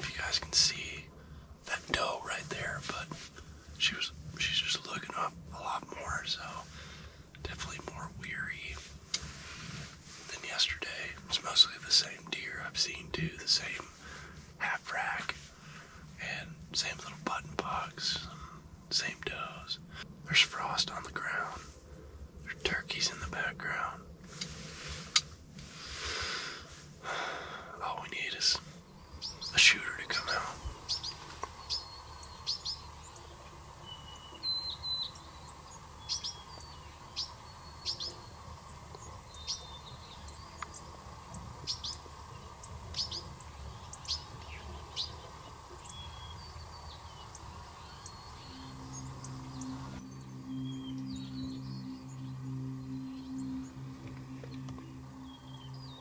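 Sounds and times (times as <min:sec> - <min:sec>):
man whispering: 0:00.0 - 0:21.8, 0:22.4 - 0:24.2, 0:27.5 - 0:28.8, 0:29.4 - 0:31.4
quiet outdoor background: 0:00.0 - 0:56.0
bird chip calls: 0:28.0 - 0:53.8.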